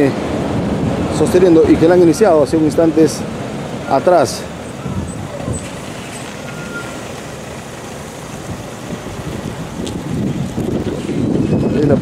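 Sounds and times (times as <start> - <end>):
pickup truck driving past: 3.2 - 11.4.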